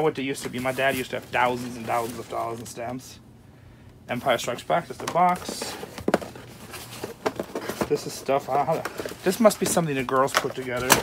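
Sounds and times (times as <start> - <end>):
paper rustling in cardboard box: 0.3 - 3.0, 4.9 - 11.0.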